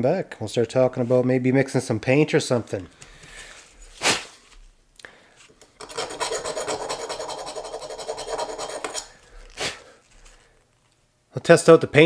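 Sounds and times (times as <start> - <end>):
brass brush scrubbing metal: 5.8 - 9.1.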